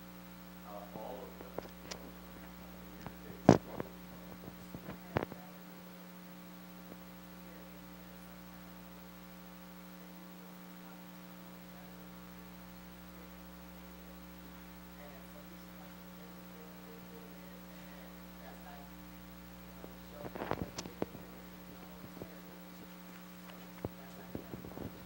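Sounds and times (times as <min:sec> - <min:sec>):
electrical mains hum: 0:00.0 - 0:25.0.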